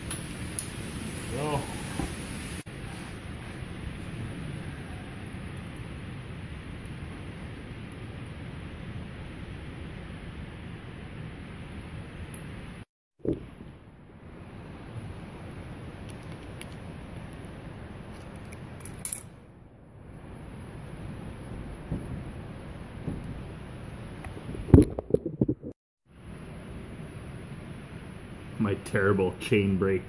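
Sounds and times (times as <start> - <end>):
steady background hiss: 0.0 - 12.8, 26.2 - 30.0.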